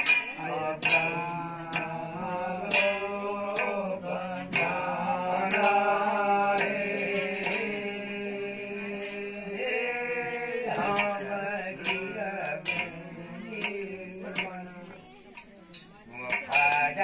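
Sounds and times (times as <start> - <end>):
man chanting a devotional ballad: 0.2 - 15.2, 16.0 - 17.0.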